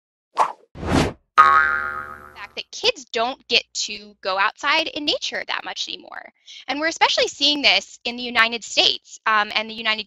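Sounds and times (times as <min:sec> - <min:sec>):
whoosh: 0:00.4 - 0:01.2.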